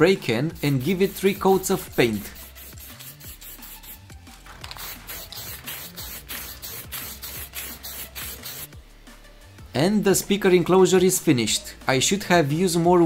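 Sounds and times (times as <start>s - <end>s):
electronic music with steady beat: 0.0s - 12.0s
aerosol can spraying: 0.6s - 8.8s.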